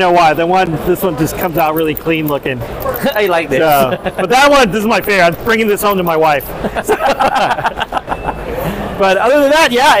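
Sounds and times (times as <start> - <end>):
busy hall background: 0.0 - 10.0
men laughing: 3.6 - 4.8, 6.4 - 9.0.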